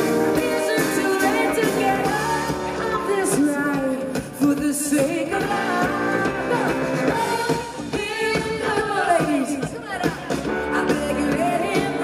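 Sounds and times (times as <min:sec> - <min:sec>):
keyboard guitar and drums: 0:00.0 - 0:12.0
woman singing: 0:00.3 - 0:12.0.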